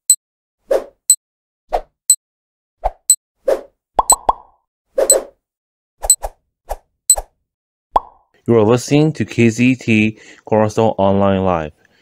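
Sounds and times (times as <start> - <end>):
cartoon pops and plops: 4.0 - 4.6, 8.0 - 8.2.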